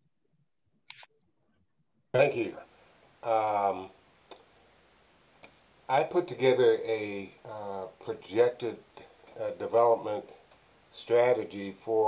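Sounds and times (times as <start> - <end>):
man speaking: 2.2 - 4.0, 5.9 - 10.4, 11.0 - 12.0.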